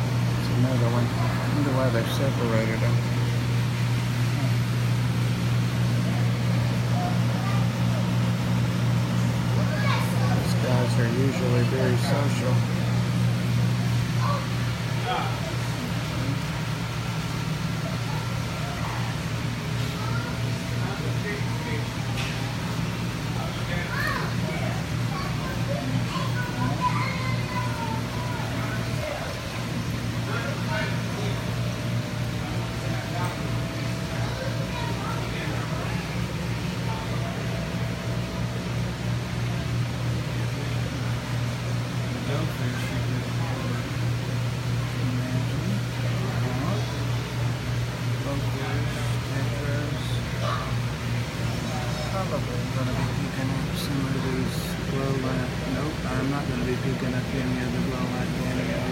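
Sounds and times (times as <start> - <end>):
aquarium equipment hum and hiss: 0.0 - 58.9
faint voices: 0.0 - 58.9.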